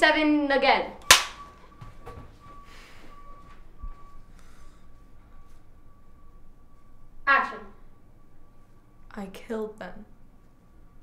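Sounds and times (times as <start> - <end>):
clapperboard snapping shut: 1.1 - 1.4.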